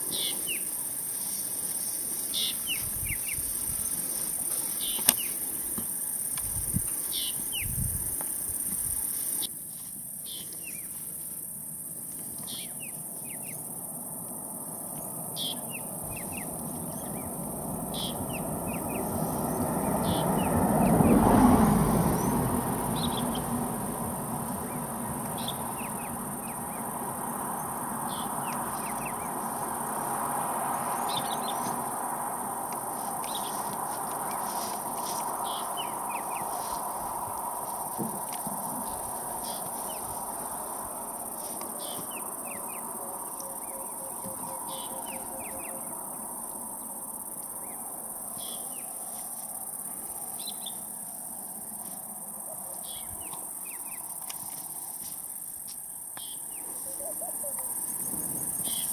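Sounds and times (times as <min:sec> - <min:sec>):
high-pitched insect drone: 0:12.5 - 0:58.9.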